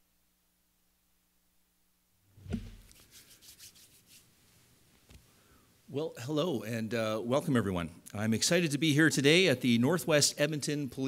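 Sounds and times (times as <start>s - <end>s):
hands rubbing together: 2.4s - 4.4s.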